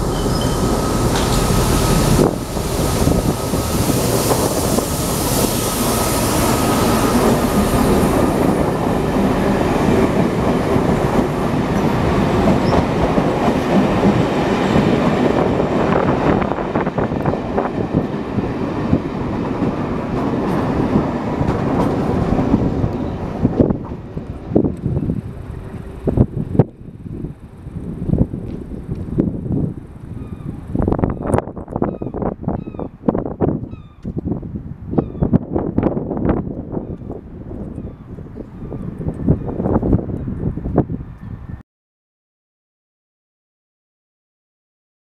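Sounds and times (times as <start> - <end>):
wheels clattering over rail joints: 0.0 - 2.4
diesel locomotive passing: 0.0 - 31.2.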